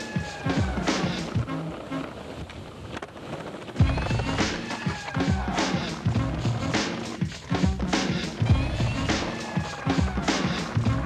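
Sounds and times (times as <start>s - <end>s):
steady drum beat: 0.0s - 1.5s, 3.8s - 11.0s.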